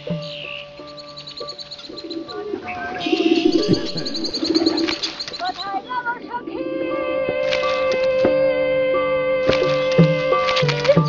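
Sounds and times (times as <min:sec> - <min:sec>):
rapid high bird chirps: 0:00.0 - 0:06.1
birds cooing: 0:00.0 - 0:08.2
held music notes: 0:00.0 - 0:11.0.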